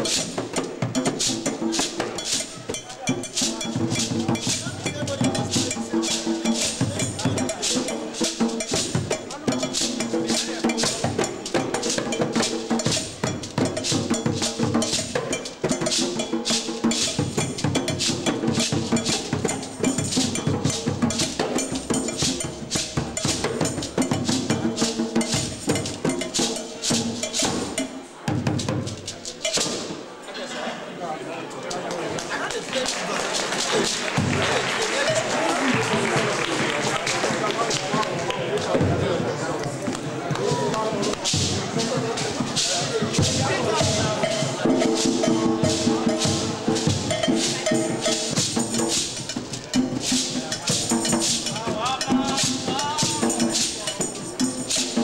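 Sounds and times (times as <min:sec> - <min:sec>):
shaker swishes: 0:00.0 - 0:27.9, 0:32.2 - 0:35.4, 0:40.8 - 0:55.0
metal bell struck rapidly: 0:00.0 - 0:28.0, 0:28.6 - 0:29.9, 0:41.3 - 0:55.0
drums: 0:00.0 - 0:30.1, 0:32.2 - 0:55.0
crowd chatter: 0:00.0 - 0:55.0.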